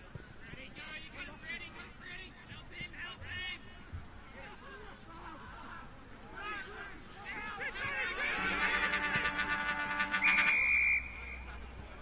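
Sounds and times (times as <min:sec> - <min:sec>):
shrill steady tone: 0:08.2 - 0:11.5
car horns sounding: 0:08.3 - 0:11.0.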